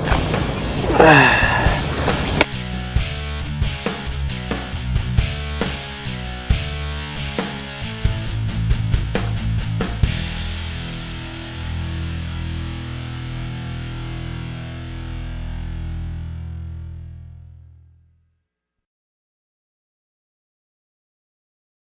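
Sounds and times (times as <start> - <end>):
distorted electric guitar rock music: 2.5 - 17.8.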